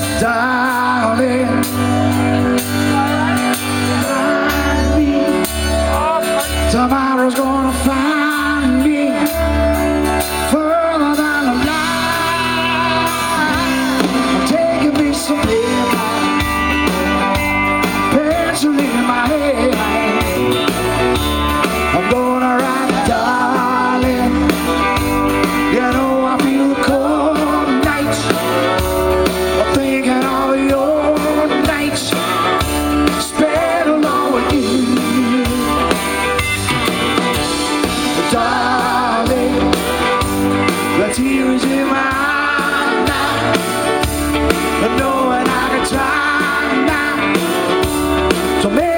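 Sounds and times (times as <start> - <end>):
drums: 0.0 - 48.9
electric guitar: 0.0 - 48.9
man singing: 0.0 - 48.9.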